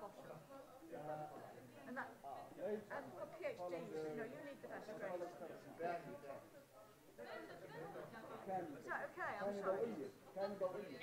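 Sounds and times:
distant chatter of people talking: 0.0s - 11.0s.

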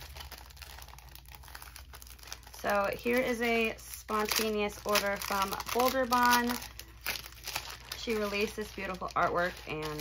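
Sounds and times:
low steady hum: 0.0s - 10.0s
paper and plastic rustling: 0.0s - 10.0s.

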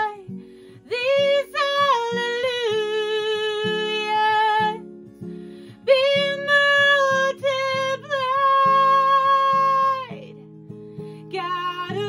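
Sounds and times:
woman singing: 0.0s - 4.9s, 5.7s - 10.4s, 11.2s - 12.0s.

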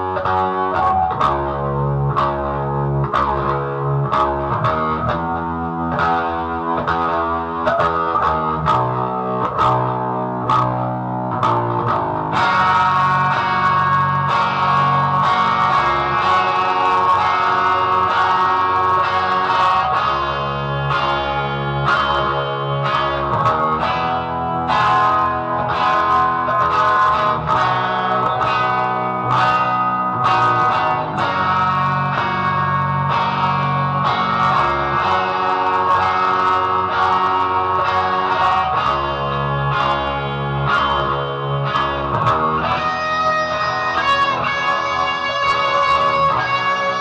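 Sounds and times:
electric guitar solo: 0.0s - 47.0s.

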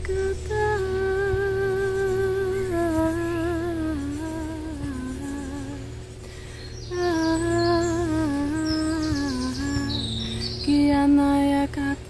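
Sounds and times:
woman humming: 0.0s - 12.0s.

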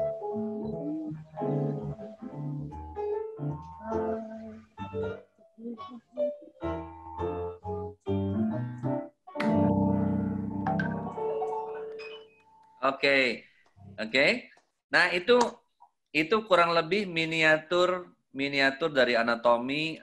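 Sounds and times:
jazz on electronic keyboard: 0.0s - 12.8s.

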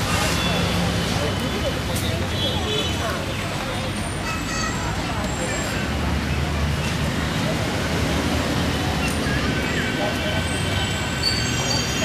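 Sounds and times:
people talking: 0.0s - 12.0s
road traffic rumble: 0.0s - 12.0s.

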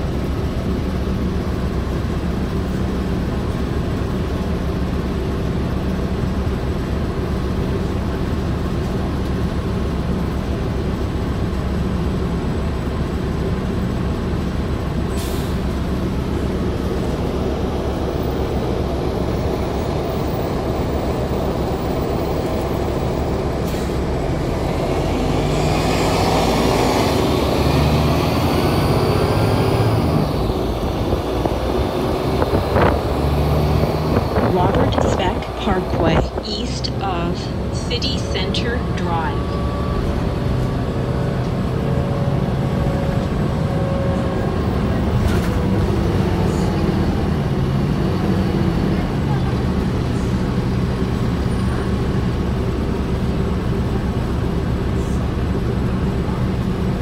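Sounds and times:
bus engine running: 0.0s - 57.0s
rising engine whine: 15.2s - 56.8s.

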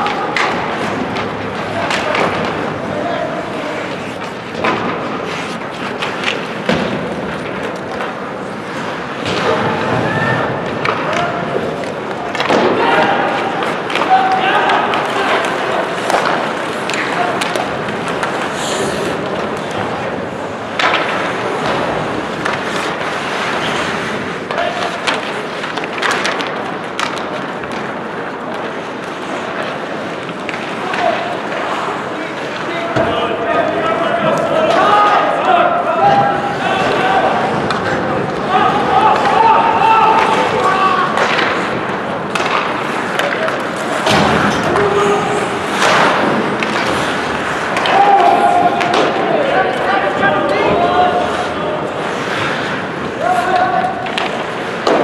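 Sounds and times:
skates scraping ice: 0.0s - 55.0s.

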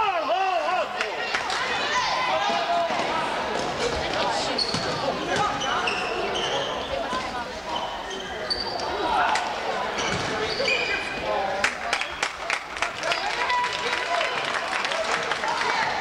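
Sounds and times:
spectators' voices: 0.0s - 16.0s
sneakers squeaking: 3.0s - 9.3s, 9.9s - 11.2s.

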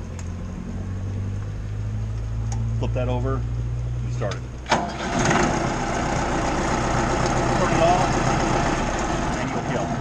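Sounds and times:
diesel engine idling: 4.8s - 10.0s.

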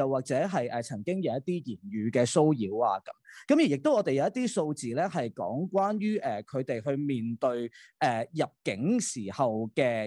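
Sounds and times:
person talking: 0.0s - 10.0s.

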